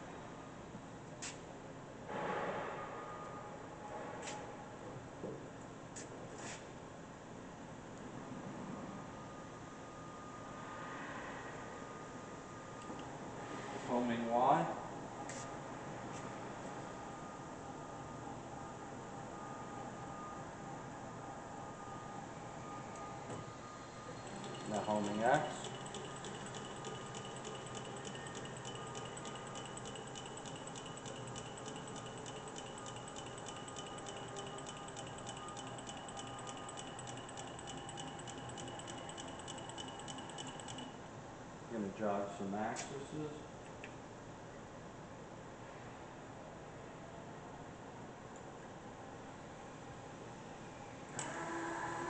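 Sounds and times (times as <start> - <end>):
mill motor hum: 22.6 - 41.0
regular ticking: 24.2 - 41.0.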